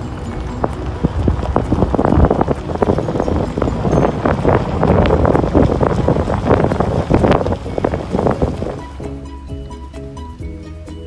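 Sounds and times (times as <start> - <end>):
small crackles and knocks: 0.0 - 9.0
wind buffeting microphone: 0.0 - 10.2
car tyre and road noise: 0.0 - 11.0.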